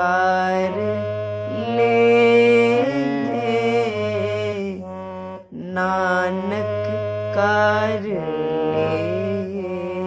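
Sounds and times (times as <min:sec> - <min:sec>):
harmonium playing held notes: 0:00.0 - 0:10.0
person singing held line: 0:05.5 - 0:10.0.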